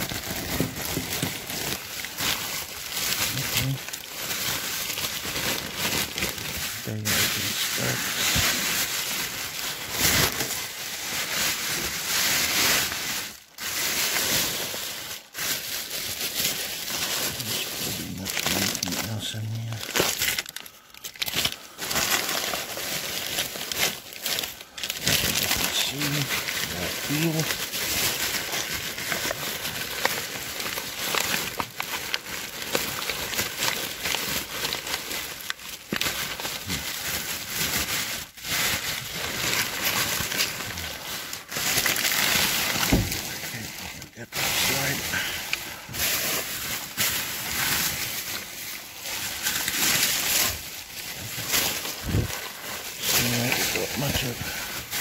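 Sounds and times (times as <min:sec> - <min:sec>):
plastic bags rustling and crinkling: 0:00.0 - 0:55.0.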